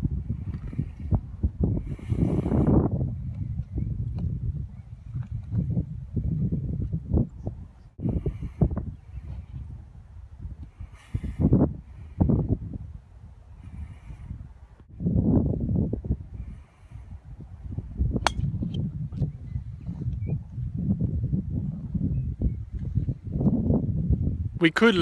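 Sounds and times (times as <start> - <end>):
wind buffeting microphone: 0.0 - 25.0
golf club striking ball: 18.2 - 18.8.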